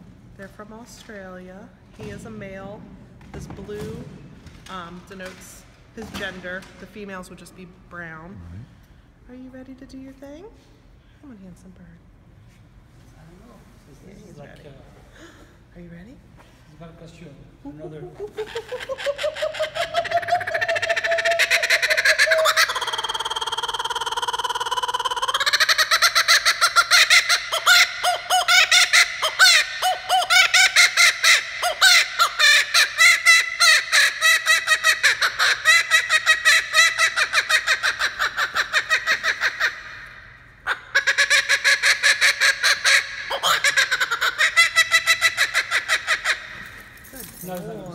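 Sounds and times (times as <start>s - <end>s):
kookaburra laughing call: 17.9s - 46.8s.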